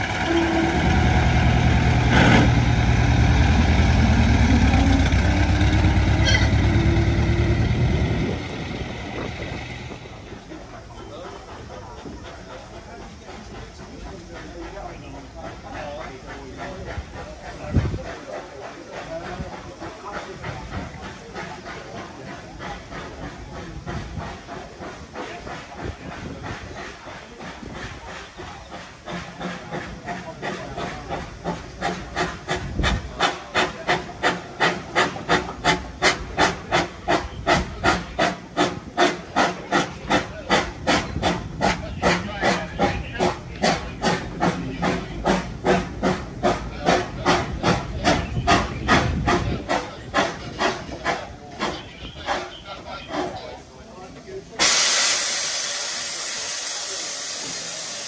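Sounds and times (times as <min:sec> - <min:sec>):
steam locomotive chuffing: 0:00.0 - 0:58.0
steam locomotive hissing: 0:00.0 - 0:58.0.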